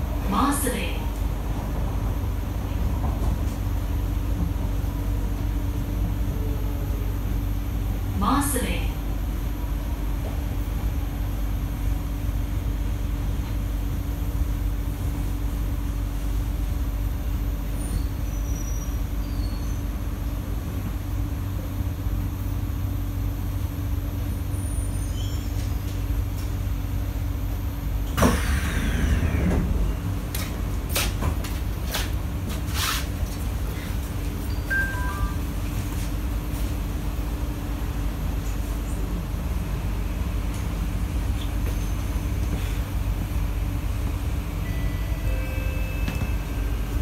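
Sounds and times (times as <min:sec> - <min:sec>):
train running rumble and hum: 0:00.0 - 0:47.0
falling whine of train stopping: 0:28.1 - 0:30.2, 0:44.5 - 0:47.0.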